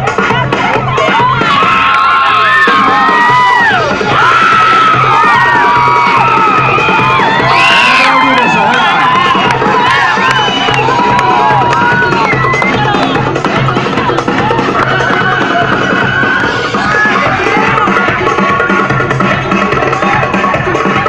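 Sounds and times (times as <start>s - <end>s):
belly-dance music: 0.0s - 21.0s
crowd cheering and shouting: 0.0s - 21.0s.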